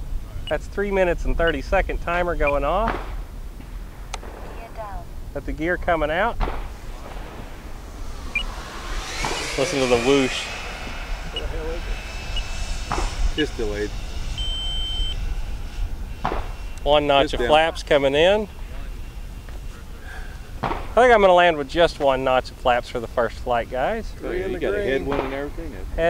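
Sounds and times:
low rumble: 0.0 - 21.1
high electronic beep: 2.4 - 2.6, 14.4 - 15.2
model jet whooshing: 5.4 - 21.9
man's voice: 16.9 - 18.4.

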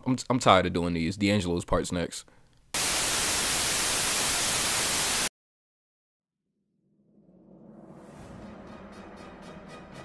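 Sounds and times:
television static hiss: 2.8 - 5.3.

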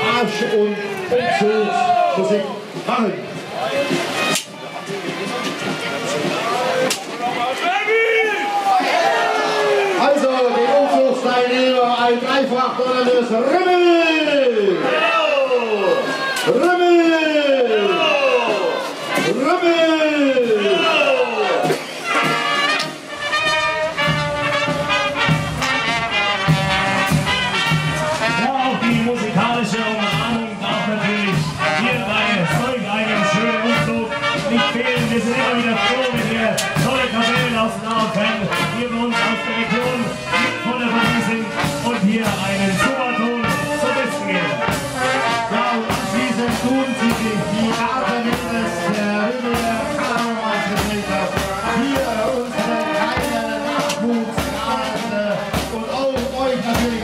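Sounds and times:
marching brass band playing: 0.0 - 57.0
bass drum beat: 23.5 - 29.5, 44.6 - 57.0
bass drum: 23.9 - 29.5.

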